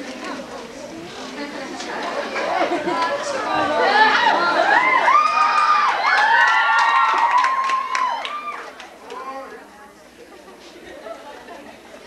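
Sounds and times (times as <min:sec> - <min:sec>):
audience cheering and shrieking: 0:03.6 - 0:08.8.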